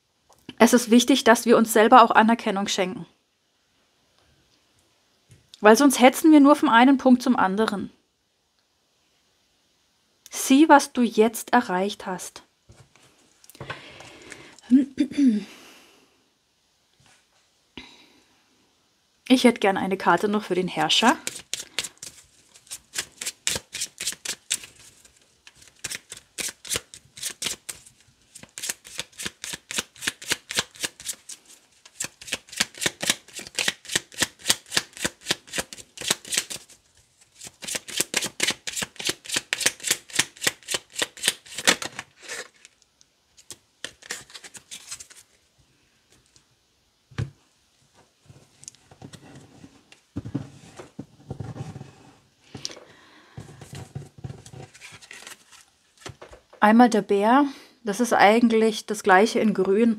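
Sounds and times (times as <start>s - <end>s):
cards being shuffled: 20.8s - 42.8s, 43.4s - 45.4s, 53.4s - 56.4s
soft handling of cards: 21.0s - 46.5s, 52.5s - 56.6s.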